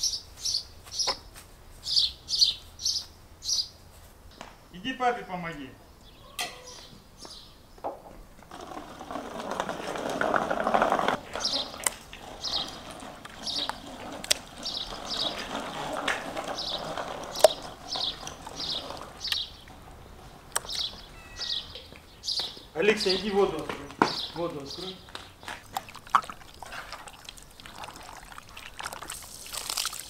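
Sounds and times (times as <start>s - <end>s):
small bird chirping: 1.8s - 3.8s, 6.0s - 7.8s, 16.5s - 23.3s
rustling: 8.4s - 22.0s.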